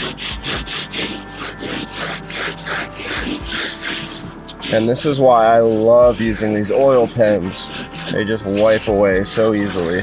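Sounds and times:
cloth rubbing rough paint: 0.0s - 10.0s.

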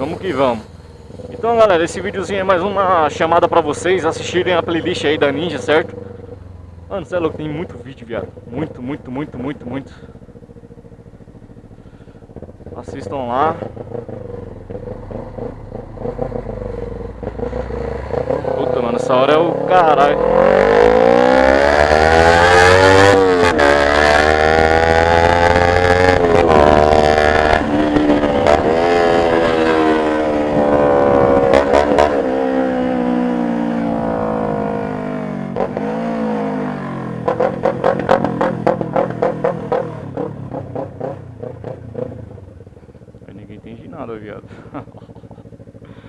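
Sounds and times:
motorcycle engine accelerating: 0.0s - 46.0s.

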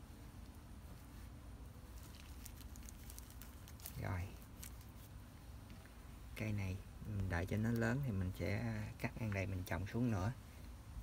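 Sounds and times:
hands rustling potting soil: 0.0s - 11.0s.

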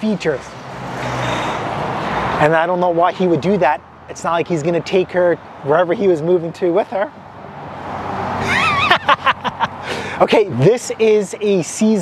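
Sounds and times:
car passing by: 0.2s - 3.3s, 7.3s - 10.3s
short high-pitched laugh: 8.4s - 9.8s.

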